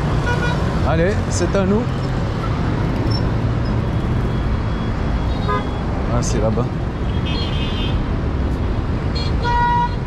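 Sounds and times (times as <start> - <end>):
traffic rumbling past: 0.0 - 9.1.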